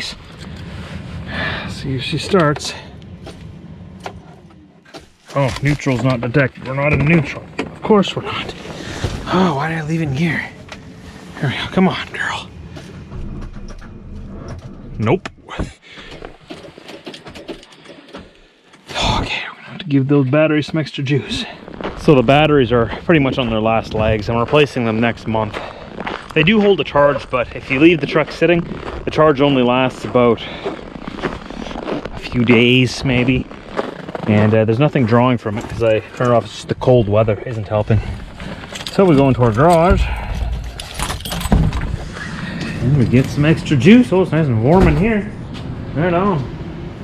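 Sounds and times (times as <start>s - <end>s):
keys clicking and jingling: 38.7s - 42.0s.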